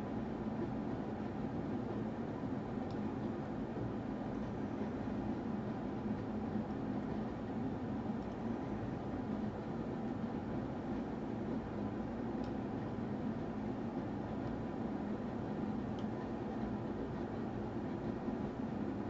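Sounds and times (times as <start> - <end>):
room noise hum and hiss: 0.0 - 19.0.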